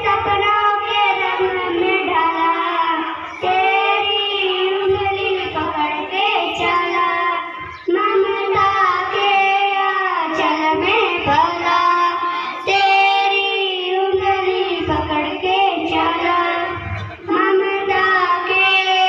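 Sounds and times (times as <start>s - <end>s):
girl singing into microphone: 0.0s - 19.0s.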